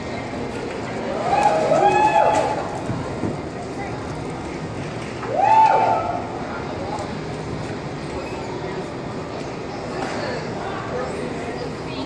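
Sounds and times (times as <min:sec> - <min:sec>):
crowd chatter in echoing hall: 0:00.0 - 0:12.0
people whooping and shouting: 0:01.1 - 0:02.8, 0:05.2 - 0:06.4.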